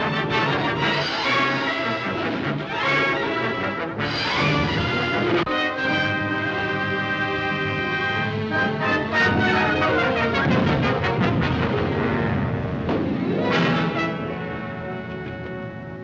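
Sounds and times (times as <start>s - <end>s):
brass over held chords: 0.0s - 16.0s
orchestral music: 0.0s - 16.0s.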